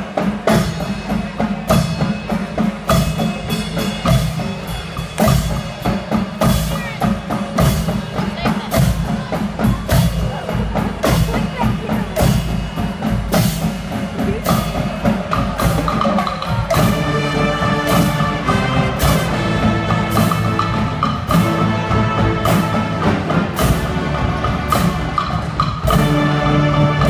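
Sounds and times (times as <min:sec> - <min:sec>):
drum beat on snare and bass: 0:00.0 - 0:27.0
brass and saxophones: 0:16.6 - 0:27.0.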